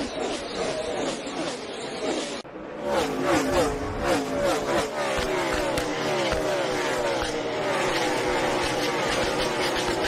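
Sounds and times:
race car engines at full throttle: 0.0s - 10.0s.

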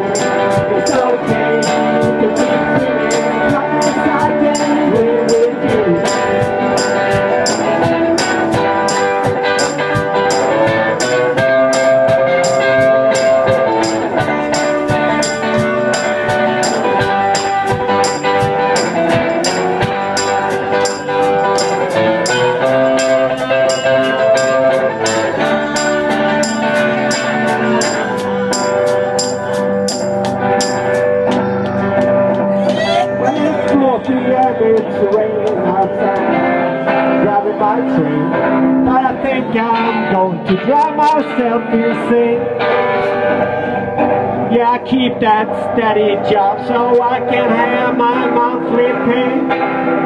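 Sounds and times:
live blues band playing: 0.0s - 50.0s.

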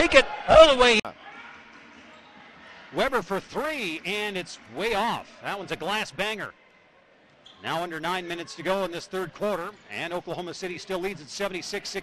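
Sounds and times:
faint crowd and player voices: 0.0s - 12.0s.

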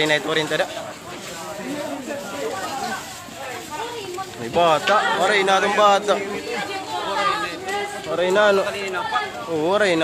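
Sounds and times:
people chattering excitedly: 0.0s - 10.0s.

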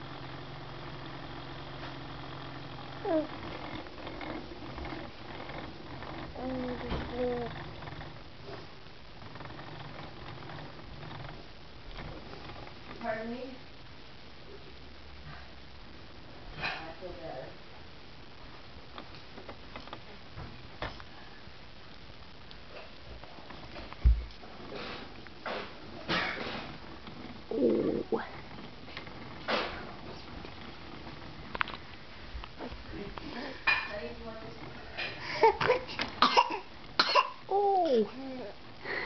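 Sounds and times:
baby coughing: 35.4s - 37.5s.

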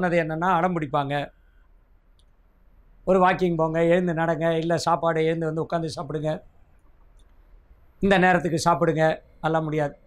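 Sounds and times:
man speaking: 0.0s - 1.4s, 3.1s - 6.5s, 8.0s - 10.0s.

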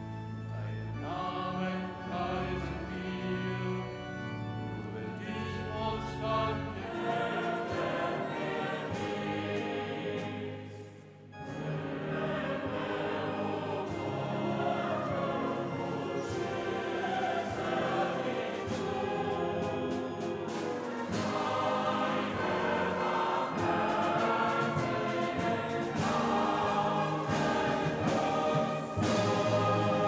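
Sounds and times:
church choir singing: 0.0s - 30.0s.

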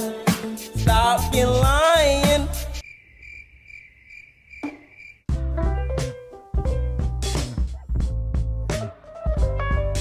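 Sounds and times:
upbeat music with plucked guitar: 0.0s - 2.8s, 5.3s - 10.0s
crickets chirping sound effect: 2.6s - 5.3s.

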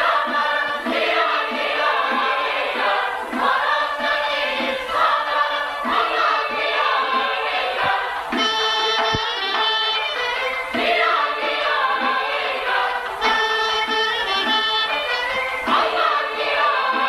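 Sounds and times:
choir singing folk song: 0.0s - 17.0s
steady rhythmic pulse: 0.0s - 17.0s.

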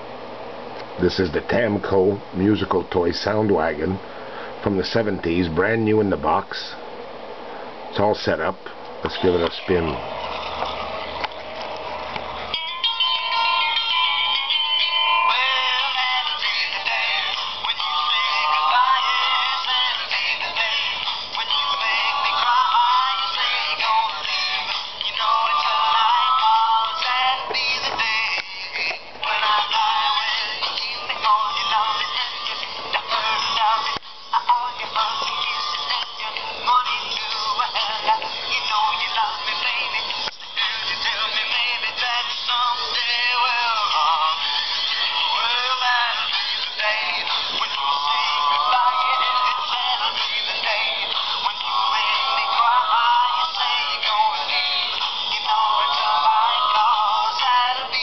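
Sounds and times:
tinny rock music with singing: 12.6s - 58.0s.

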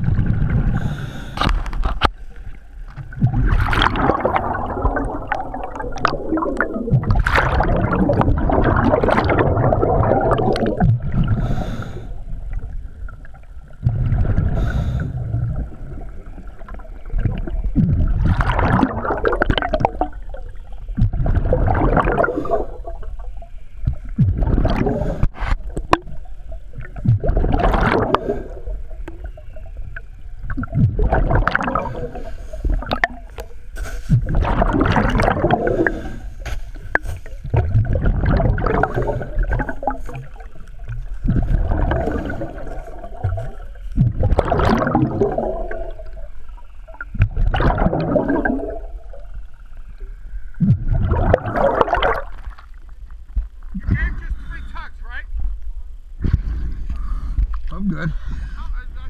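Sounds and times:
gurgling exhaled bubbles underwater: 0.0s - 54.0s
inhaling through regulator: 0.7s - 1.5s, 11.2s - 12.3s, 14.5s - 15.4s, 22.1s - 22.9s, 35.6s - 36.5s.

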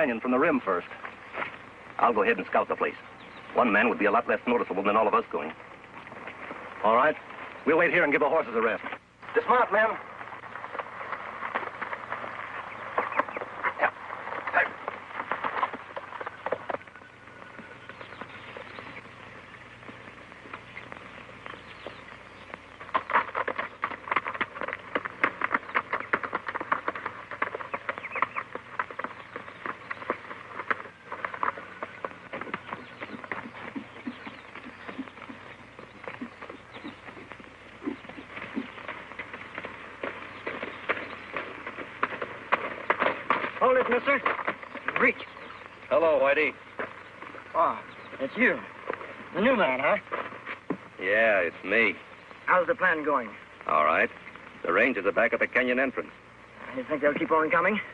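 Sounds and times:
hooves clattering on rocky ground: 0.0s - 57.9s.

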